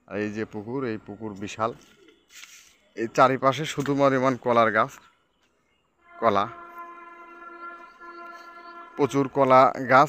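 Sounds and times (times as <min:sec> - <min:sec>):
horn sounding steady note: 0:06.0 - 0:10.0.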